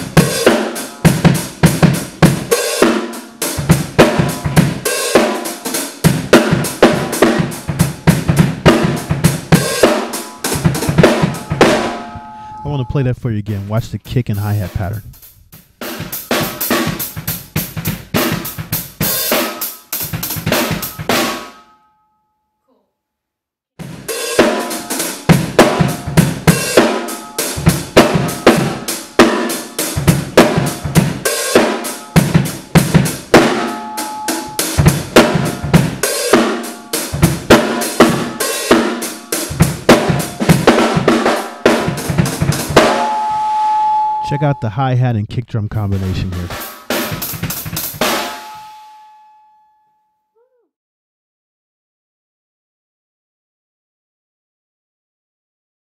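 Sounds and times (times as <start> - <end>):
drum kit funk groove: 0.0 - 21.4, 23.8 - 43.5, 45.7 - 48.6.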